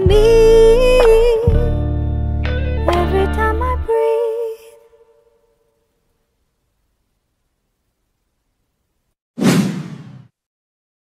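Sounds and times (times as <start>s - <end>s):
whoosh with low hit: 9.4s - 10.3s.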